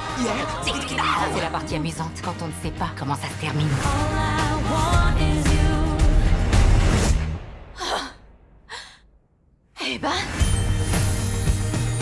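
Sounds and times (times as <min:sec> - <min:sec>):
woman gasping: 0:07.8 - 0:09.1.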